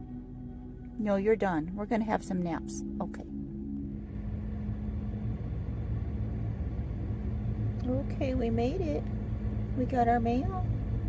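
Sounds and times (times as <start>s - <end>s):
car road rumble from inside: 0.0s - 11.0s.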